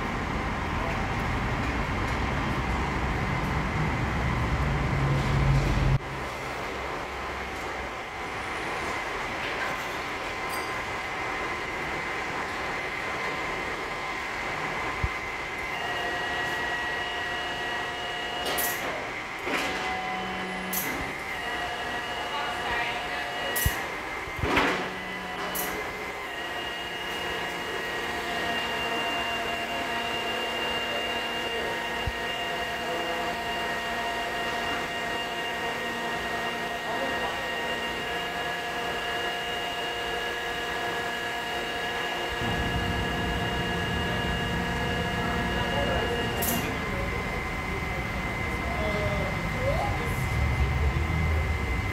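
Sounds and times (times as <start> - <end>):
hydraulic system whine: 0.0 - 51.9.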